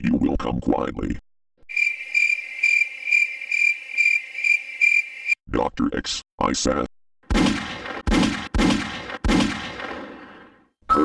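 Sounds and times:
crickets chirping: 1.7 - 5.4.

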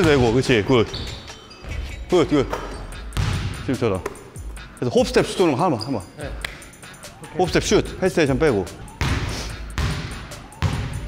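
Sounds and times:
basketball bouncing on wooden floor: 2.4 - 4.2, 9.0 - 11.0.

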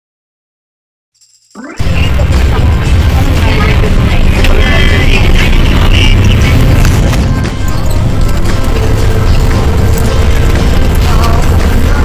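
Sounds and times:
music: 1.5 - 12.0
voices: 1.6 - 12.0
bus engine and road rumble: 1.8 - 12.0.

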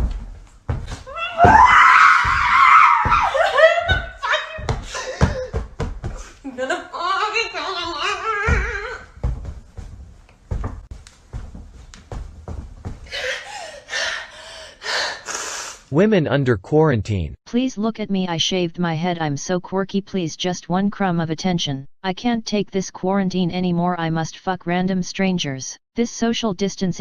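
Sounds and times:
body landing on mattress: 0.0 - 6.2, 8.5 - 13.1
woman screaming: 1.1 - 5.0
woman gasping for breath: 13.1 - 15.8.

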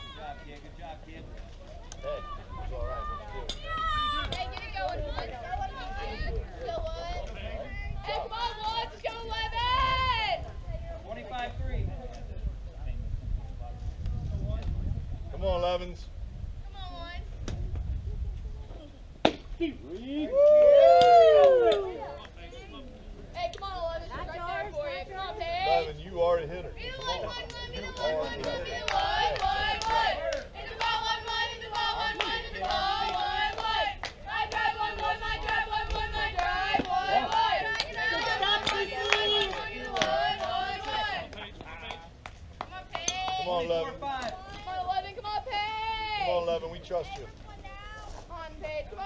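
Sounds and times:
faint voices: 16.6 - 49.0
girls chanting and cheering: 26.8 - 41.3.

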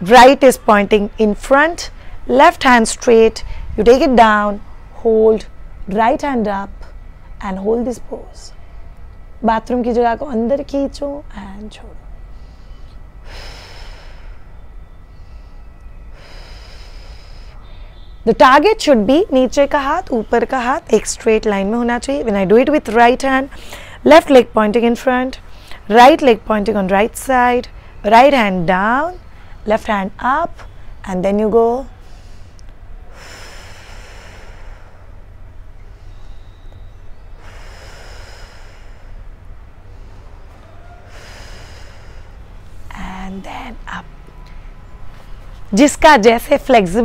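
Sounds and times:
steady low rumble: 0.0 - 47.0
woman breathing: 3.4 - 3.8, 12.1 - 18.1, 23.5 - 24.0, 31.9 - 43.0
person breathing out: 41.0 - 42.4.

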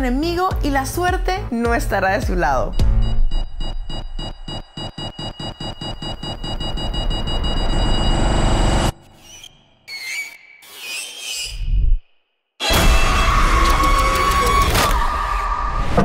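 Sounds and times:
fast electronic pulse: 2.7 - 9.8.

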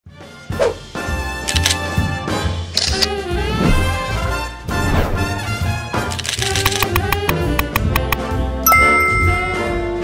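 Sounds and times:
quick run of clicks: 6.1 - 8.2
upbeat jingle music: 6.7 - 10.0
bright ding: 8.7 - 9.8.

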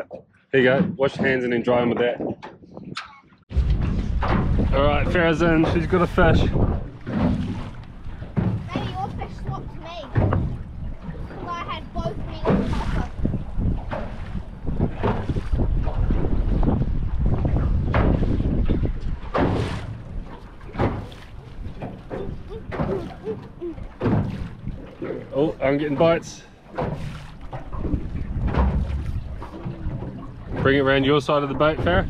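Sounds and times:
water slapping boat hull: 0.0 - 32.0
wind buffeting microphone: 0.6 - 32.0
low rumble: 3.5 - 12.4.

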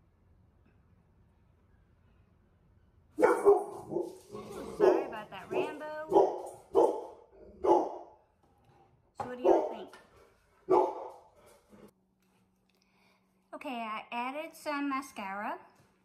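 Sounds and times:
dog barking: 3.2 - 8.2, 9.4 - 9.9, 10.7 - 11.3.

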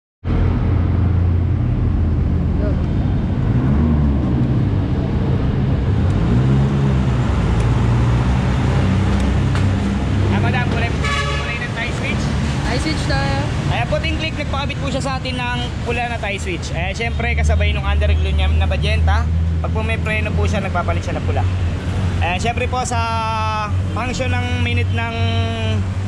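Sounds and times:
person speaking: 10.3 - 16.7.

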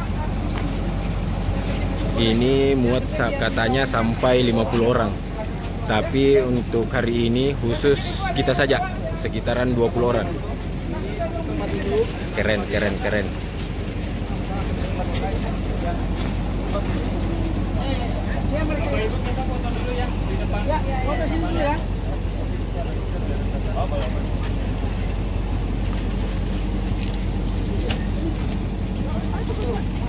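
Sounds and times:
engine idling: 0.0 - 30.0
people talking: 0.0 - 30.0.

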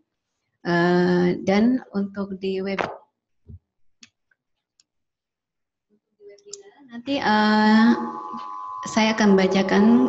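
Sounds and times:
person speaking: 6.2 - 10.0.

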